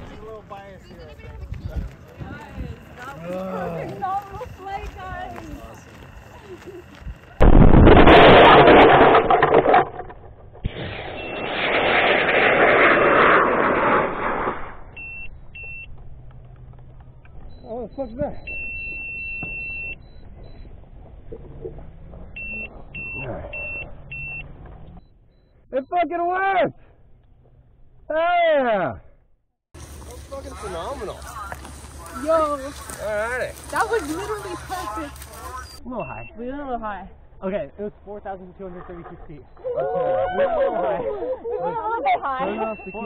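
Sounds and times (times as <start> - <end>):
loud rushing noise: 7.4 - 14.9
altimeter beeping: 17.4 - 20.8, 42.4 - 43.0.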